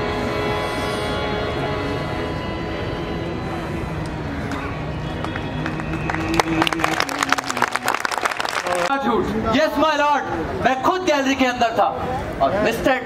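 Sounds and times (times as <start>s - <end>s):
music of long held tones: 0.0s - 8.9s
audience applause: 5.0s - 9.0s.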